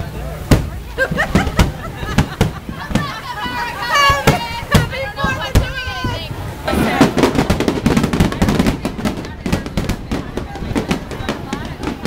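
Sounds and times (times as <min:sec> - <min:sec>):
fireworks bangs and crackles: 0:00.0 - 0:12.0
voices: 0:00.0 - 0:12.0.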